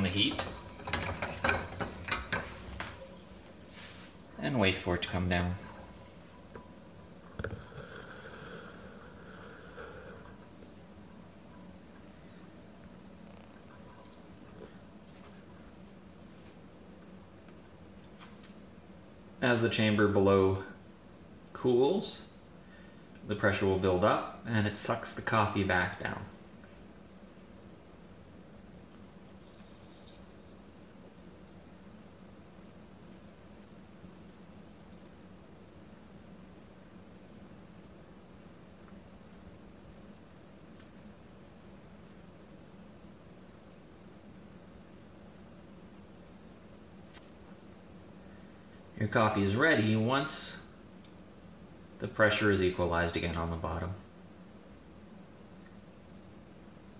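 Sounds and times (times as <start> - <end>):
coffee maker crackling fizz: 0.0 - 17.6, 28.8 - 37.1
low steady hum: 0.0 - 56.9
watery bubbling and hiss: 5.0 - 11.0.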